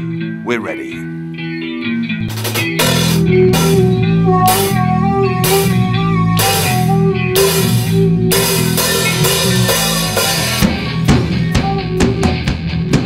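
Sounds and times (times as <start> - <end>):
electric guitar: 0.0 - 13.0
electric bass: 1.0 - 13.0
drum kit: 2.2 - 13.0.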